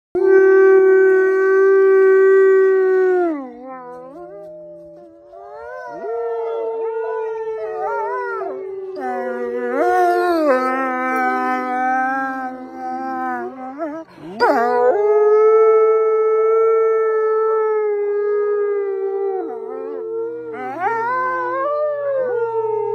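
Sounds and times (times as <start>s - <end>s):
wolves howling: 0.2s - 22.9s.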